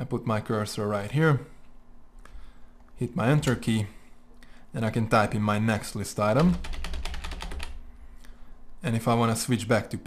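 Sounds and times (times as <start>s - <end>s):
computer keyboard typing: 6.3s - 7.8s.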